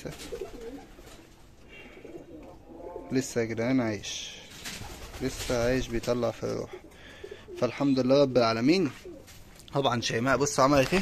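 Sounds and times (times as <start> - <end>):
pigeons cooing faintly: 0.0 - 11.0.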